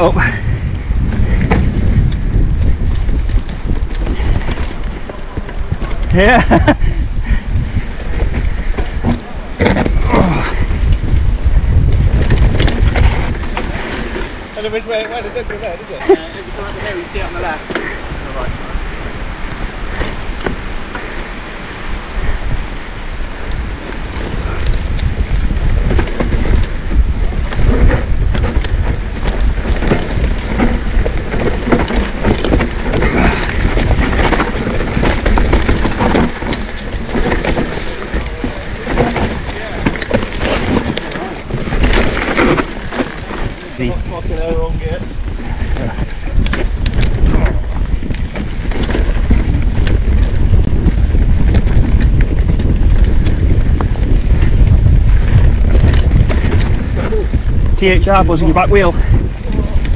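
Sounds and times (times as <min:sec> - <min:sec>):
bike rattling and knocking: 0:00.0 - 0:59.9
bike tyres rolling over dirt: 0:00.0 - 0:59.9
wind rumble on microphone: 0:00.0 - 0:59.9.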